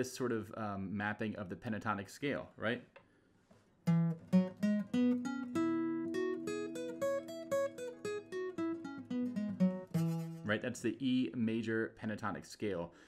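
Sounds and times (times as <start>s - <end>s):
acoustic guitar picking notes: 3.8s - 10.8s.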